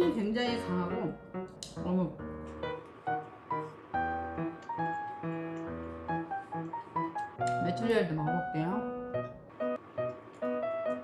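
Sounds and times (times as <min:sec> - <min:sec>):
slow melody of held notes: 0:00.0 - 0:11.0.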